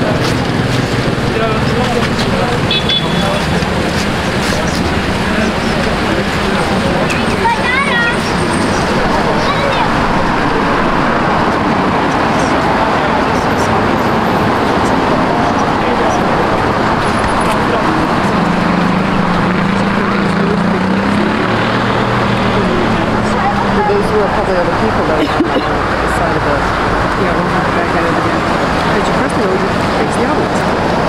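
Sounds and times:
city road traffic: 0.0s - 31.0s
people's voices: 0.0s - 31.0s
vehicle engine hum: 0.0s - 31.0s.

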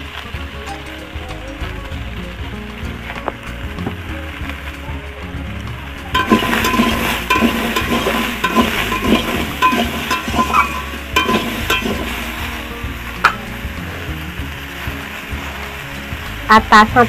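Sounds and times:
food sizzling in a pan: 0.0s - 17.0s
spatula scraping and stirring: 6.1s - 12.5s.

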